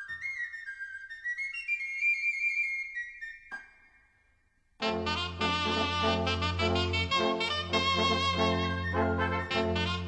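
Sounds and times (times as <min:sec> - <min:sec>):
small pipe melody: 0:04.8 - 0:10.0.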